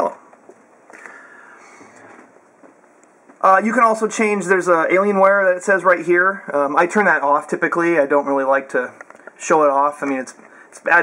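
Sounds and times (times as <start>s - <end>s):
faint hiss: 0.9s - 2.4s
man speaking: 3.4s - 11.0s.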